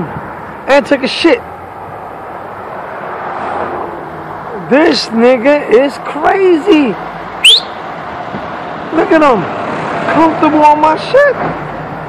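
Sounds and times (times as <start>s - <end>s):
street background noise: 0.0s - 12.0s
loud rising whistle: 7.4s - 7.8s.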